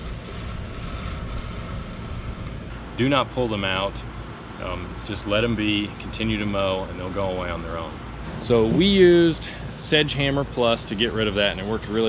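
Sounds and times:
outdoor low rumble with hiss: 0.0 - 12.0.

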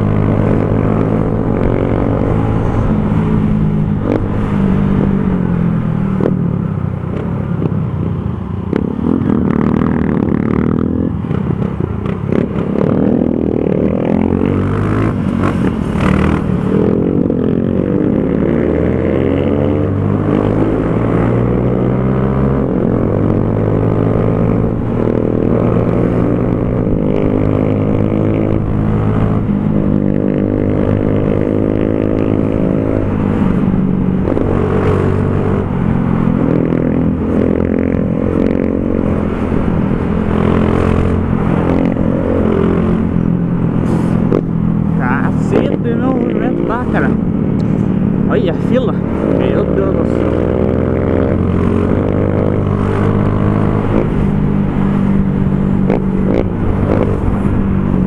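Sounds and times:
motorcycle engine revving: 0.0 - 58.0.

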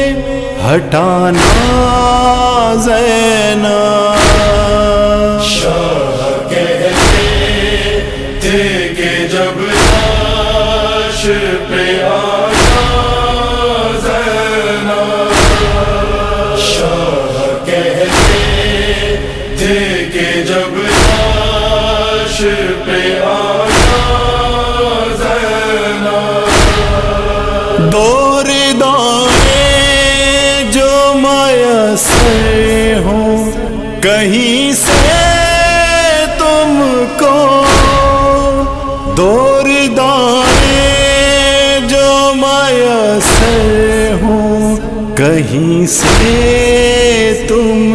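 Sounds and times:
wordless chanted vocals: 0.0 - 47.9
deep thump: 4.2 - 5.8, 6.9 - 8.7, 9.8 - 11.1, 12.5 - 14.2, 15.3 - 17.0, 18.1 - 19.9, 20.9 - 22.9, 23.6 - 25.8, 26.4 - 28.4, 32.1 - 33.1, 37.6 - 39.1, 43.2 - 44.1, 46.0 - 47.5.

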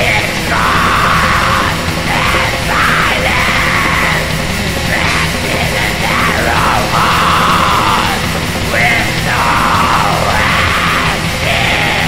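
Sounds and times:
distorted guitars: 0.0 - 12.0
drums: 0.0 - 12.0
harsh screamed vocals: 0.0 - 12.0.

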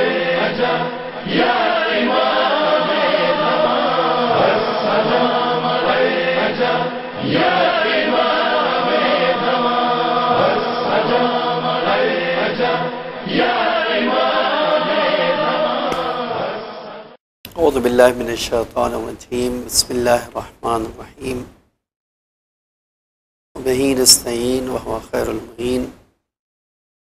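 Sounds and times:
person chanting: 0.0 - 16.8.

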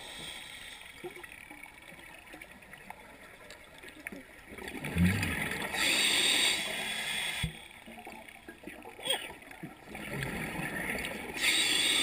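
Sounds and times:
underwater bubbling rumble: 1.1 - 5.8, 7.9 - 11.4
scuba regulator hiss: 5.8 - 7.5, 11.4 - 12.0.

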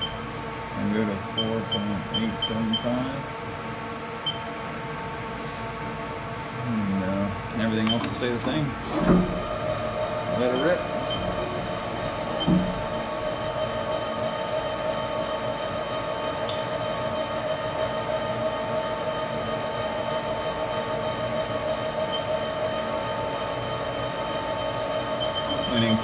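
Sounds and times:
lathe whine: 8.7 - 26.0.

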